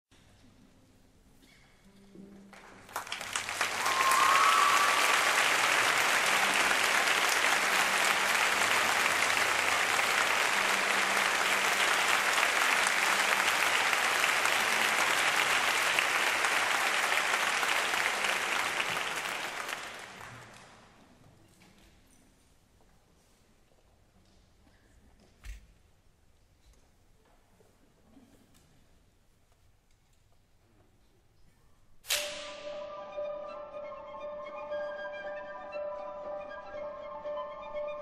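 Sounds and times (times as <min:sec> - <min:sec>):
audience applauding: 0:02.6 - 0:20.9.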